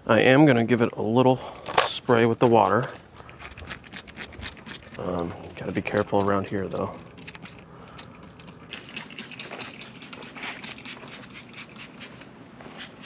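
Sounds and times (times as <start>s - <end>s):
handling clicks and crackles: 1.6s - 10.6s.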